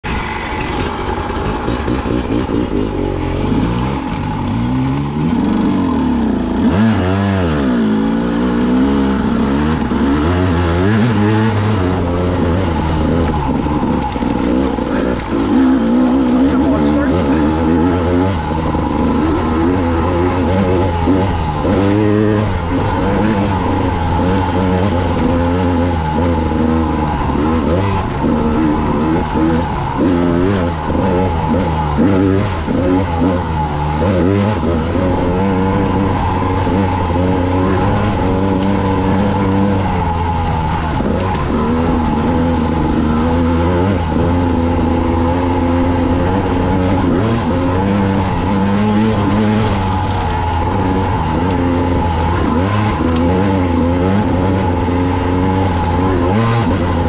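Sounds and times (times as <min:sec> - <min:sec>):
motorbike engine revving: 0:00.0 - 0:57.0.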